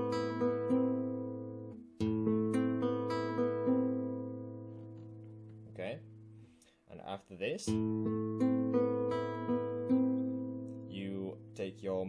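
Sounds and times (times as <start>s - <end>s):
fingerstyle guitar arpeggio: 0.0s - 6.6s, 7.6s - 12.0s.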